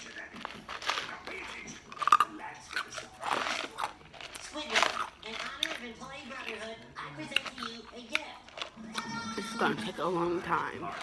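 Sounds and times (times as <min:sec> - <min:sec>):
ice being chewed: 0:00.0 - 0:11.0.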